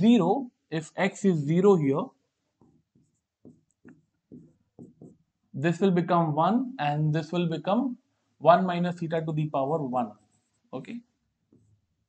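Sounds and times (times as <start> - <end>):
marker pen writing on whiteboard: 2.4 - 5.4, 8.6 - 12.0.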